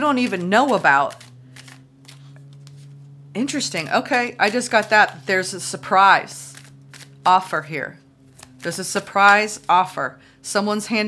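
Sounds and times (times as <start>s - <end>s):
cards being shuffled: 0.0s - 7.5s, 8.3s - 9.8s
steady low hum: 0.0s - 11.0s.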